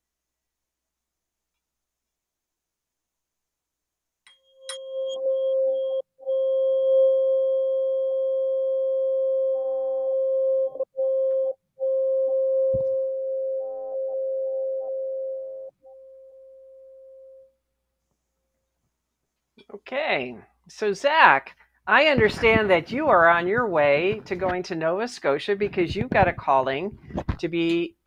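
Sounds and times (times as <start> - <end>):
singing bowl ringing: 4.3 - 8.6.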